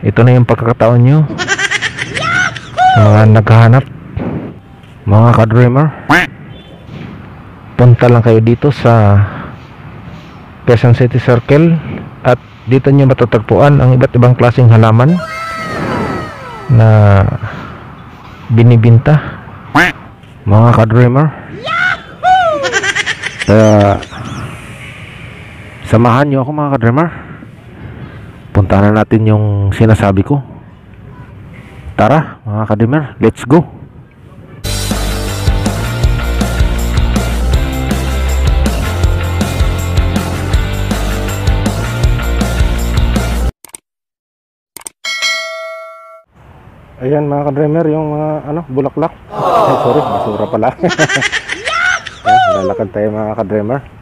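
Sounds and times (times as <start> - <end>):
animal cry falling in pitch: 15.2 - 16.8.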